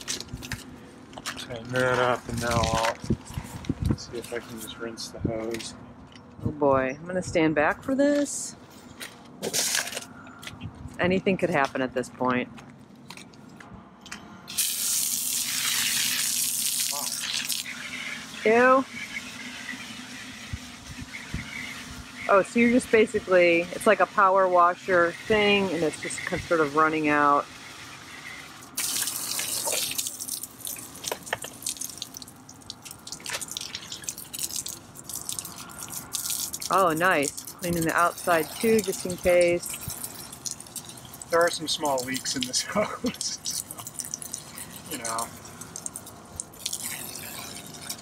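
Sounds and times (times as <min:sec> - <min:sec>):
water gushing into hose: 0:14.5 - 0:48.0.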